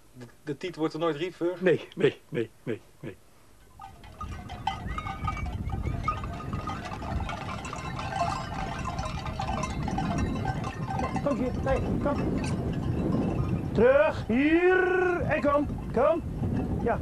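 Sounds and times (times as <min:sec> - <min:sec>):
hooves rumbling on sandy ground: 0:03.7 - 0:17.0.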